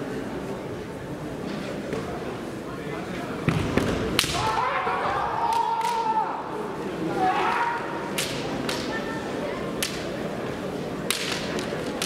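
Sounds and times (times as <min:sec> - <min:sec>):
bamboo swords clacking: 0:04.2 - 0:04.5, 0:05.5 - 0:06.1, 0:08.1 - 0:08.9, 0:09.8 - 0:10.2, 0:11.0 - 0:12.0.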